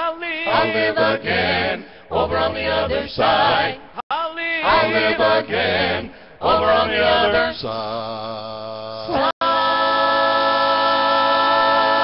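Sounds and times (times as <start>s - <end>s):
vocal quartet holding a chord: 0.0s - 12.0s.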